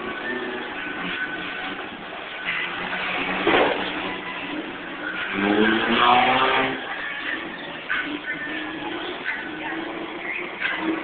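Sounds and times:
car engine revving hard: 0:00.0 - 0:11.0.

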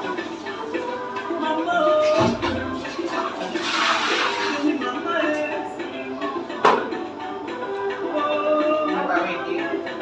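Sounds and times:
water splashing onto floor: 0:02.2 - 0:04.8.

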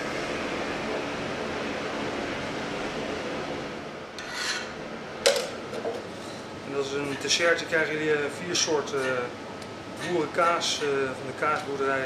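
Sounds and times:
brief scrape: 0:04.2 - 0:04.7.

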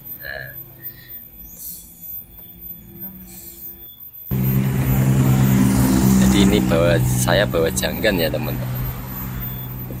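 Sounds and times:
motorcycle engine idling: 0:04.3 - 0:10.0.

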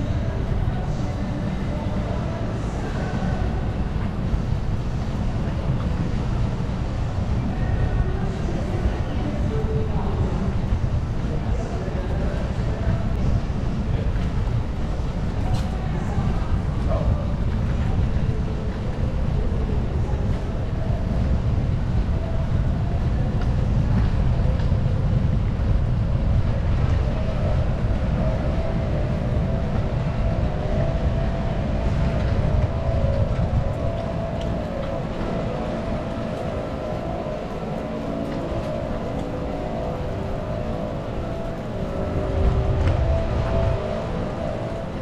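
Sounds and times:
wind buffeting microphone: 0:00.0 - 0:45.0
faint steady tones: 0:15.8 - 0:45.0.

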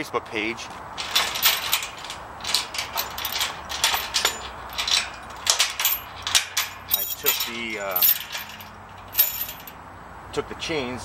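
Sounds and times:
metal chains clinking: 0:01.0 - 0:09.8.

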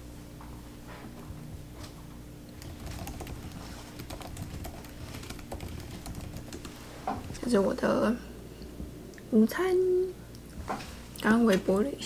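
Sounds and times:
laptop keyboard typing: 0:02.6 - 0:07.6.

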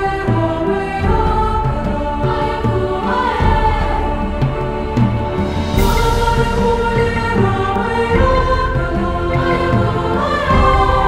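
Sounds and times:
choir singing in harmony: 0:00.0 - 0:11.0
instrumental accompaniment with beat: 0:00.0 - 0:11.0.

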